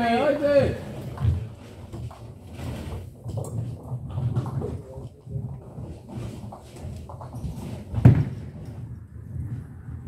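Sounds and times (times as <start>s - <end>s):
bowling balls rolling: 0.7s - 10.0s.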